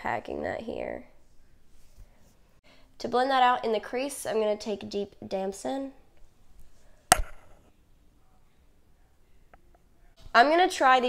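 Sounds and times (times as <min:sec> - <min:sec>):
sharp knock: 0:07.1 - 0:07.6.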